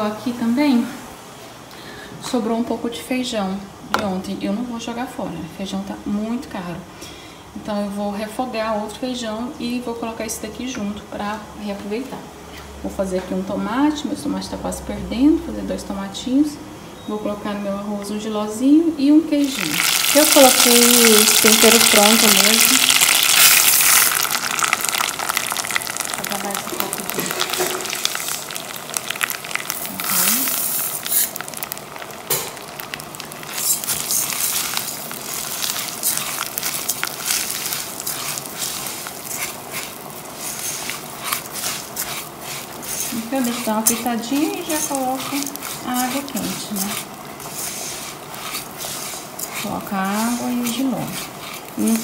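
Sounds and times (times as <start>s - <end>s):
crackles of stirred grains: 19.4s - 52.0s
rice sizzling in hot oil: 19.4s - 52.0s.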